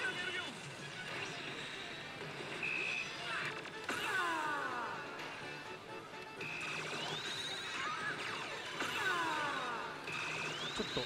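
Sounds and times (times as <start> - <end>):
din of gaming hall: 0.0 - 11.0
slot machine electronic music: 0.7 - 11.0.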